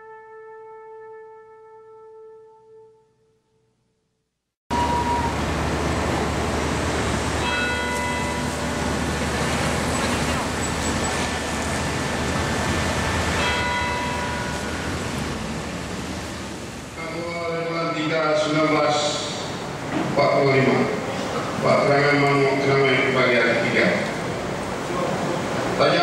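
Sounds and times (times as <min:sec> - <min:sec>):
busy road traffic rumble: 0:04.7 - 0:26.0.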